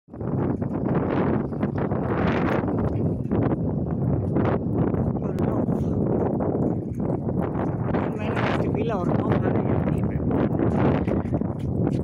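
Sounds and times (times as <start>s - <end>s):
wind rumbling on microphone: 0.1s - 12.0s
voices: 7.9s - 11.4s.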